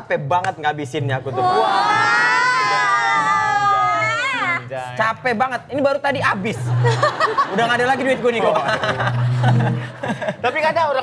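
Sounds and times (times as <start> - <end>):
high-pitched vocal wail: 1.4 - 4.6.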